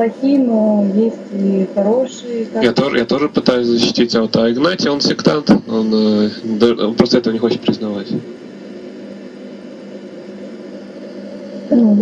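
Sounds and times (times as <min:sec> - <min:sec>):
microphone hum and hiss: 0:00.0 - 0:12.0.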